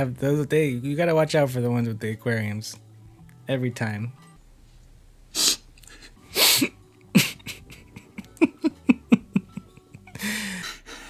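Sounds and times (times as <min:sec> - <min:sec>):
man's stifled laughter: 0:07.1 - 0:11.0.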